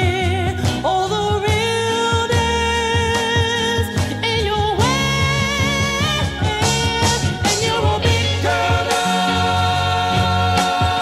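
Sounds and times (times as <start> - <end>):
drum beat and bass: 0.0 - 11.0
soul vocals with vibrato: 0.0 - 11.0.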